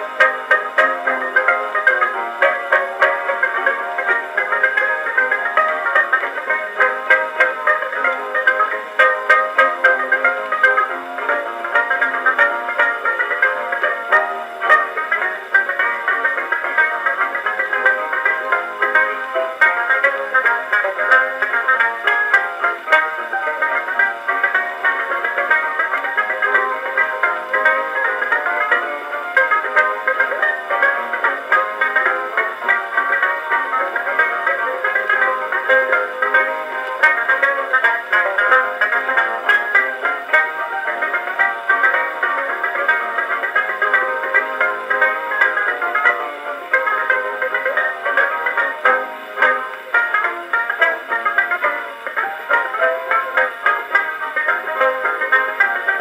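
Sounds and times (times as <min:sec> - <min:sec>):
plucked banjo melody: 0:00.0 - 0:56.0
ragtime record on gramophone: 0:00.0 - 0:56.0.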